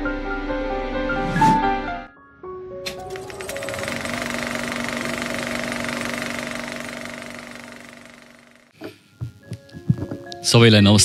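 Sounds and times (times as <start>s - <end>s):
mechanical rattle: 2.9s - 8.7s.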